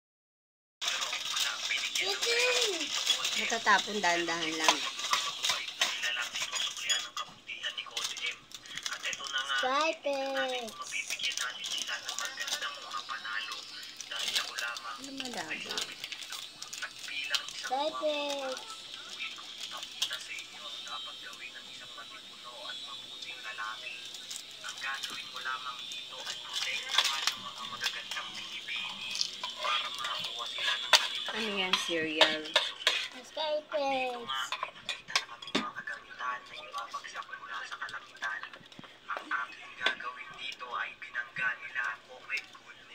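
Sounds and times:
crackers breaking: 0:00.8 - 0:07.2, 0:07.9 - 0:09.6, 0:10.4 - 0:21.5, 0:23.2 - 0:33.2
plastic wrapper crinkling: 0:00.8 - 0:07.2, 0:07.9 - 0:20.5, 0:23.6 - 0:33.2.

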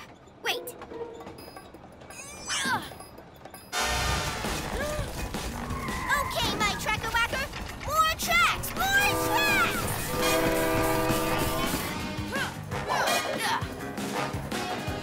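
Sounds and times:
cartoon train running: 0:00.0 - 0:15.0
background music: 0:03.6 - 0:15.0
train horn blasts: 0:03.8 - 0:04.6, 0:08.8 - 0:12.2.

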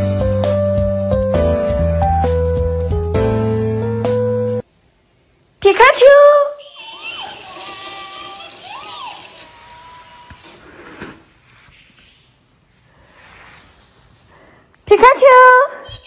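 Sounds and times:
faint room noise: 0:04.6 - 0:16.0.

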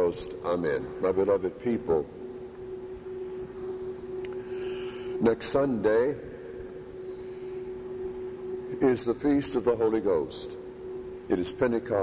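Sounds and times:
steady hum: 0:00.0 - 0:12.0.

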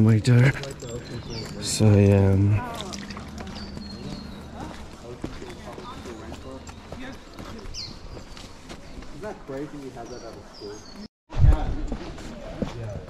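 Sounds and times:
high bird calls: 0:00.6 - 0:11.1
footsteps on leafy dirt trail: 0:02.6 - 0:11.0.

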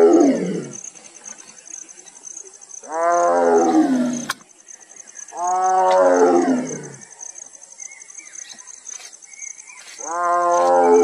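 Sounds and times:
tigress moaning call: 0:02.8 - 0:04.3, 0:05.3 - 0:07.1, 0:10.0 - 0:11.0.

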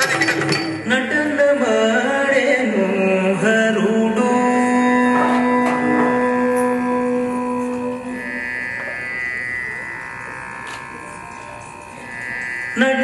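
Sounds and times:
classical indian music: 0:00.0 - 0:13.0.

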